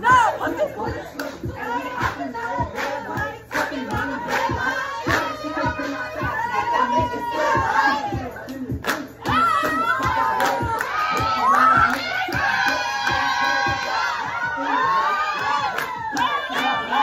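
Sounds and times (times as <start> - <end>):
music with steady beat: 0.0 - 17.0
women whooping and cheering: 3.8 - 8.3, 9.2 - 17.0.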